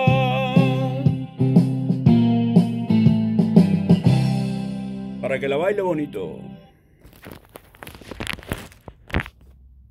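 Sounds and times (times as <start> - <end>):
phone handling rustles and knocks: 7.0 - 9.6.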